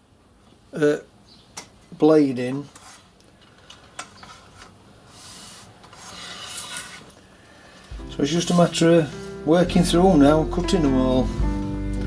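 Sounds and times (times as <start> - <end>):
hand saw cutting wood: 5.9 - 7.1.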